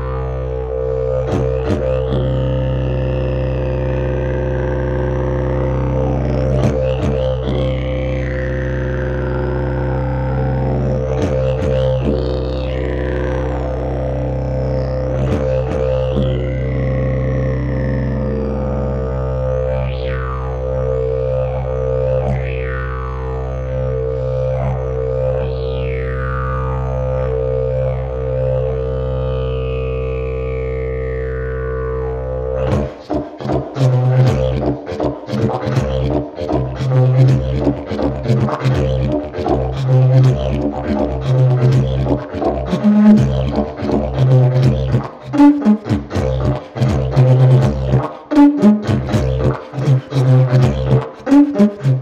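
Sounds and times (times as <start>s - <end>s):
didgeridoo drone: 0.0s - 52.0s
didgeridoo rhythmic pulses: 0.0s - 52.0s.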